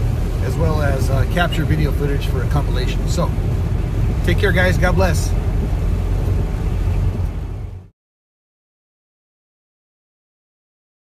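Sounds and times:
car cabin road rumble: 0:00.0 - 0:07.9.

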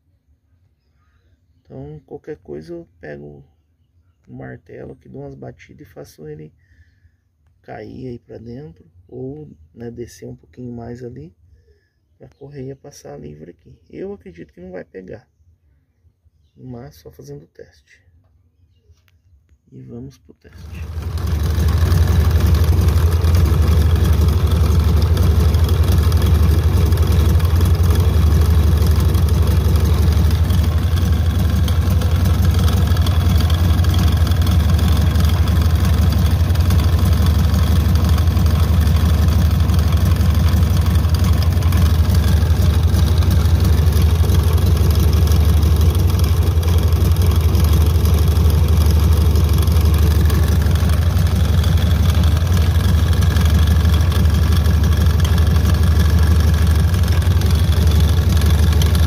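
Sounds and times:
car engine idling: 0:20.5 - 0:59.0.

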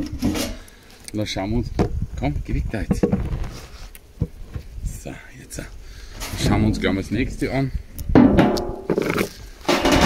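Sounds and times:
stones scraping on metal: 0:06.1 - 0:10.0.

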